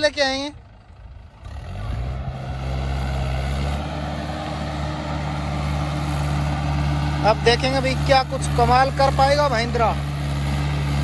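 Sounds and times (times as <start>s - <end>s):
tractor diesel engine running: 0.0s - 11.0s.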